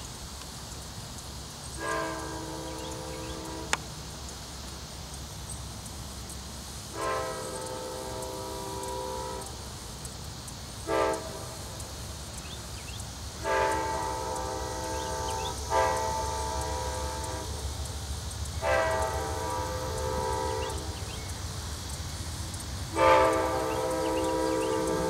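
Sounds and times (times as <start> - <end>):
diesel locomotive rumble: 0.0 - 25.0
train air horn blasts: 1.8 - 3.9, 6.9 - 9.8, 10.8 - 12.0, 13.3 - 21.3, 22.9 - 25.0.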